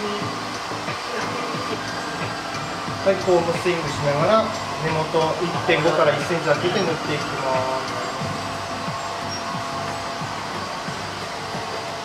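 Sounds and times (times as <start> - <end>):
blower rushing: 0.0 - 12.0
faint music: 0.0 - 12.0.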